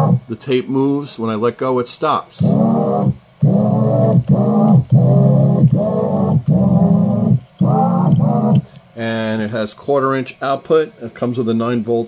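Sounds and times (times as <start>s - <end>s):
tape sampler keyboard notes: 0.0s - 0.3s, 2.4s - 8.7s.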